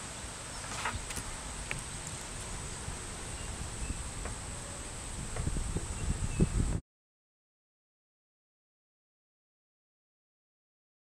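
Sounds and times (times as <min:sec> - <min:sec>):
insect drone: 0:00.0 - 0:06.8
wind rumble on microphone: 0:01.0 - 0:06.8
bird chirps: 0:02.6 - 0:05.0, 0:05.8 - 0:06.7.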